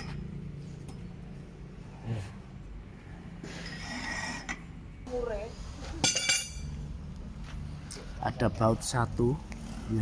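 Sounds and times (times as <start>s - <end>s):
metal clinking against metal: 6.0s - 6.8s.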